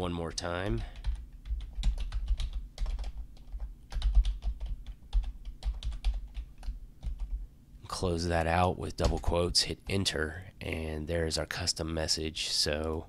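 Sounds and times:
keyboard typing: 0.7s - 7.4s.

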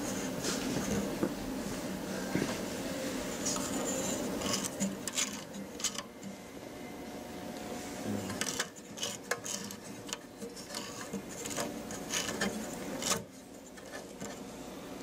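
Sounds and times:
faint hum: 0.0s - 15.0s
hands rubbing metal case: 8.3s - 14.4s.

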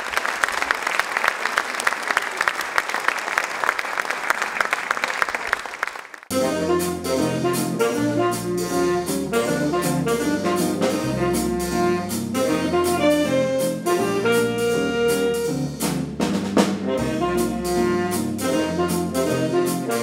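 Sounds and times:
bass: 6.3s - 20.0s
drum kit beat: 6.3s - 20.0s
piano: 6.3s - 20.0s
saxophones and brass: 6.3s - 20.0s.

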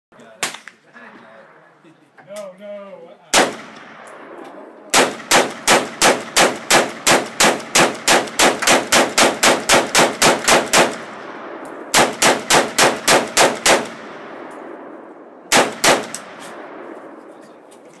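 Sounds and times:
rifle shots with echo: 3.3s - 17.6s.

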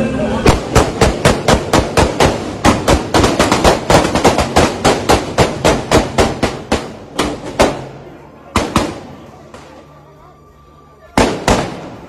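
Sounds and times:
rapid gunshots: 0.5s - 7.8s.

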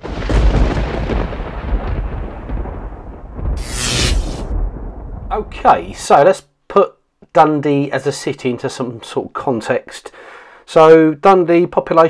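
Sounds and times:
thunder rolling rumble: 0.0s - 6.1s.

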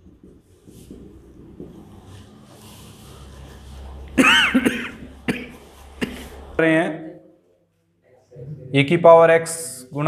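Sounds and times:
faint room hum: 0.0s - 10.0s
man coughing: 4.2s - 6.4s.

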